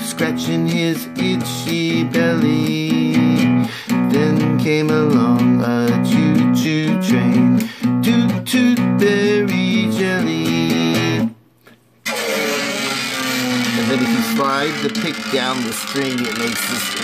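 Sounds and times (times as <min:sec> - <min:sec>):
person singing: 0:00.0 - 0:11.4, 0:12.1 - 0:17.0
pick scraping down a string: 0:12.0 - 0:17.0.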